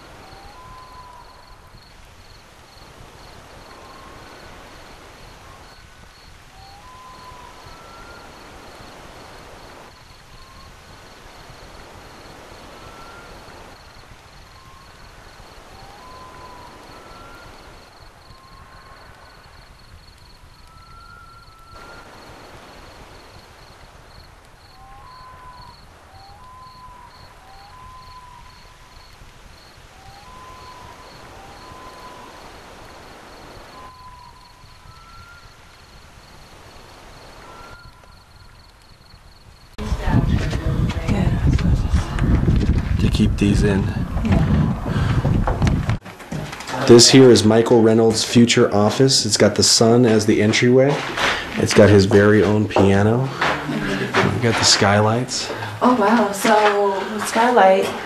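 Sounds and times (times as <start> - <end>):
background hiss: 0.0 - 58.0
birds chirping: 0.0 - 58.0.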